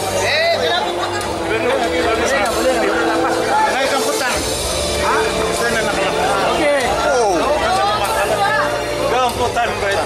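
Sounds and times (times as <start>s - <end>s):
crowd talking: 0.0s - 10.0s
music playing: 0.0s - 10.0s.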